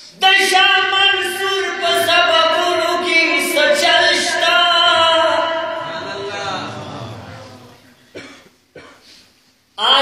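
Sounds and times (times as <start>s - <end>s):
short coughs: 8.0s - 9.3s.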